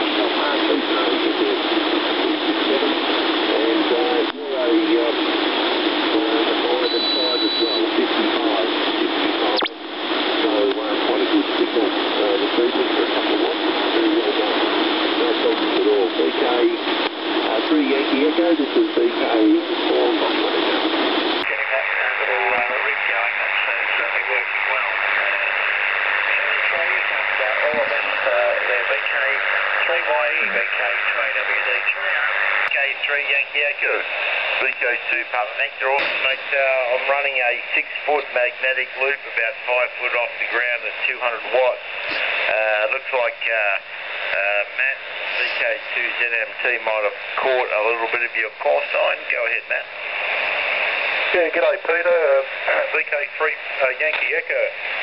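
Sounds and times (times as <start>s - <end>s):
faint radio voices: 0.0s - 55.0s
radio band hiss: 0.0s - 55.0s
thin high whistle: 6.8s - 7.9s
radio click: 9.5s - 9.8s, 15.6s - 15.9s, 16.8s - 17.7s, 33.9s - 34.9s, 35.8s - 36.4s, 42.1s - 42.6s, 53.8s - 55.0s.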